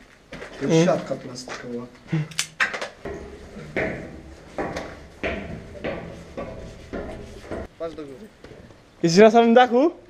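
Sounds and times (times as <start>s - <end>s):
footsteps on debris-strewn floor: 0.0s - 7.8s.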